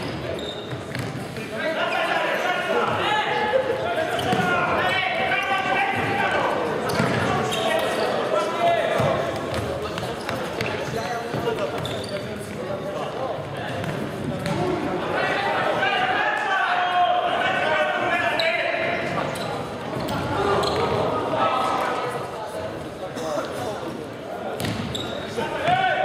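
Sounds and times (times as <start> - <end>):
players shouting in sports hall: 0.0 - 11.2, 14.5 - 22.5, 24.6 - 26.0.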